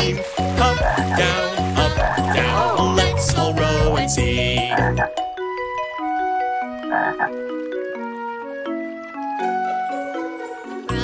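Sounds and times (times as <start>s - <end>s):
song music: 0.0s - 11.0s
cartoon frog croaking: 0.7s - 5.1s, 6.9s - 7.3s.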